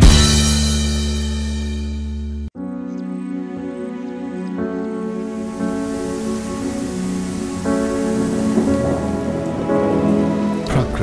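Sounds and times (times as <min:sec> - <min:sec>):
soft background music chords: 0:00.0 - 0:11.0
rain falling: 0:04.8 - 0:11.0.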